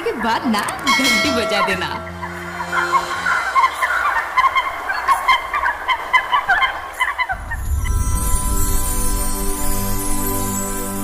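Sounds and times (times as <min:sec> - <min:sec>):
background music: 0:00.0 - 0:06.4, 0:07.3 - 0:11.0.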